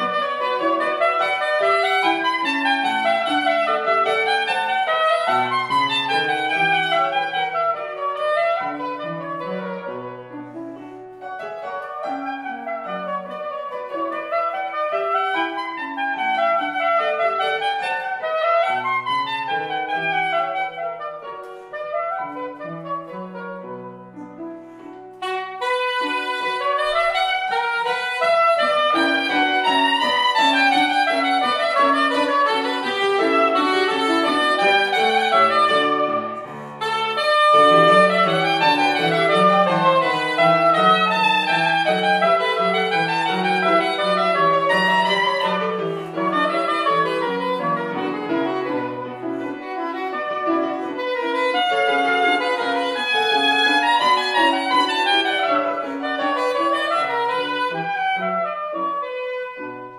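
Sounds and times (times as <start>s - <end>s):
grand piano: 0.0s - 59.9s
soprano saxophone: 0.0s - 59.9s.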